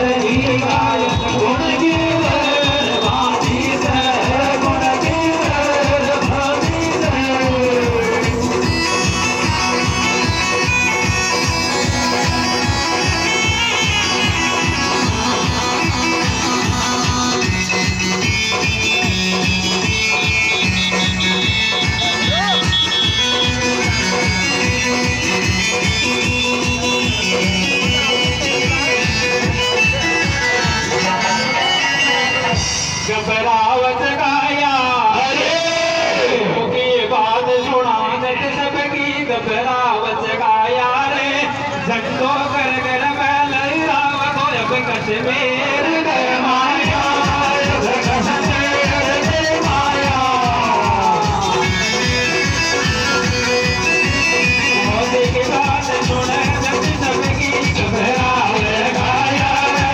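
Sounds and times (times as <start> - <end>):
loud music with driving beat: 0.0 - 36.7, 44.0 - 59.9
wavering melody line: 8.0 - 33.0.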